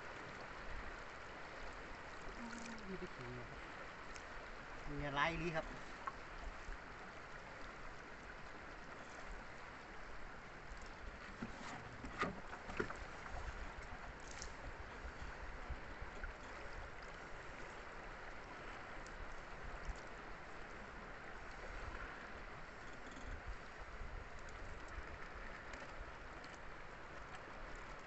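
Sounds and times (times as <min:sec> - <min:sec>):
water dripping and splashing: 0:02.1 - 0:03.3.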